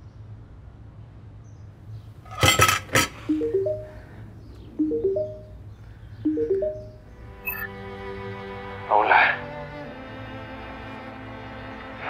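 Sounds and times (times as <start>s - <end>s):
kitchenware clinking: 2.3s - 3.8s
rising three-note ringtone chime: 3.3s - 4.1s, 4.8s - 5.6s, 6.3s - 7.7s.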